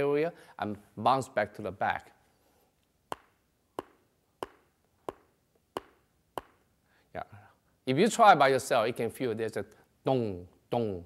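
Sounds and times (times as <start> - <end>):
teeth tapping together: 3.1 - 6.6.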